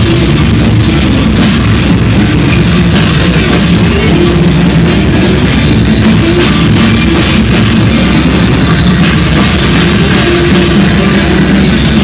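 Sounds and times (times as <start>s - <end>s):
bass guitar: 0.0s - 12.0s
distorted electric guitar: 0.0s - 12.0s
fast drumming and cymbals: 0.0s - 12.0s.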